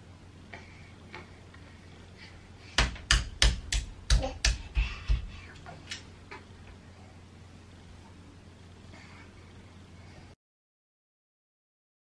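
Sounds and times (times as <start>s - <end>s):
hands slapping cot rail: 2.8s - 6.1s.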